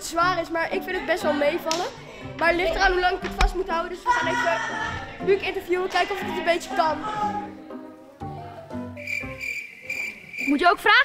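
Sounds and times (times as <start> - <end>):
background music with low notes: 0.0 - 11.0
crickets chirping: 9.0 - 11.0.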